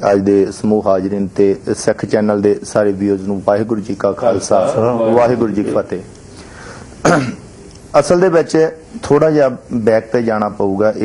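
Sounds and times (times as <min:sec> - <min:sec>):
low room hiss: 0:00.0 - 0:11.0
man clearing throat: 0:07.0 - 0:07.5.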